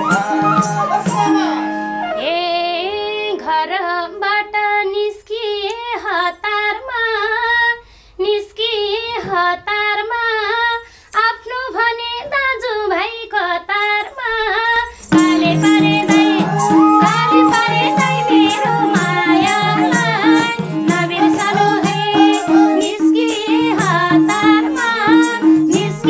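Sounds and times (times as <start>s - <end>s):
woman singing unaccompanied: 2.2s - 26.0s.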